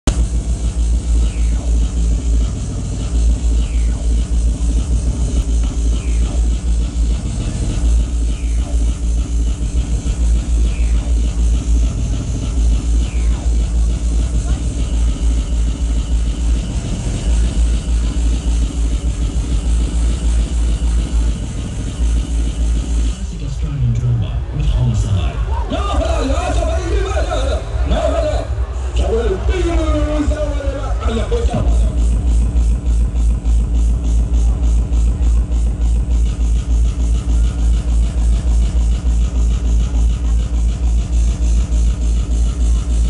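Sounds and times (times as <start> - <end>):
loud hardcore techno: 0.0 - 43.0
rapid kick drum: 31.1 - 43.0.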